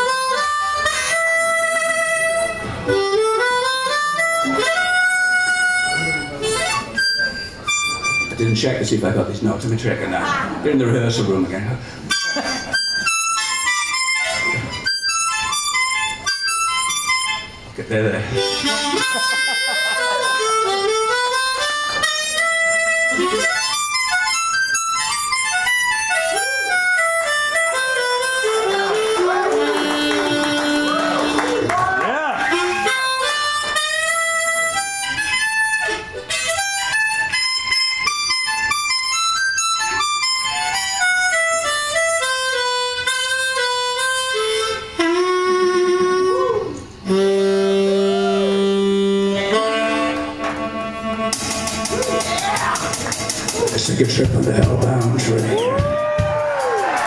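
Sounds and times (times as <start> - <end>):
blues harmonica playing: 0.0 - 9.6, 11.0 - 57.0.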